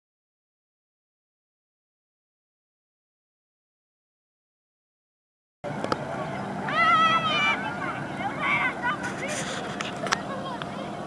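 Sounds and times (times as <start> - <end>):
truck engine hum: 5.6 - 11.0
child shouting: 6.3 - 9.4.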